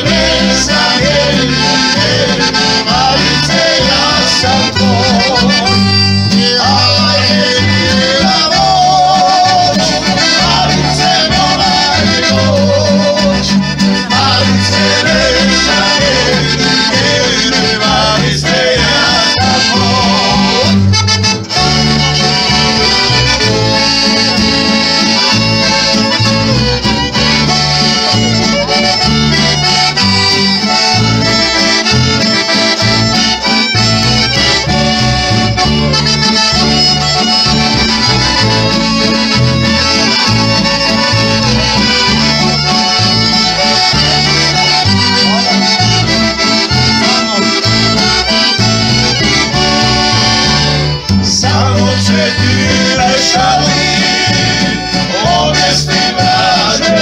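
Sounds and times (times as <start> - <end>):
piano accordion: 0.0 - 57.0
stepping bass line: 0.0 - 57.0
strummed acoustic guitar: 0.0 - 57.0
violin: 0.0 - 57.0.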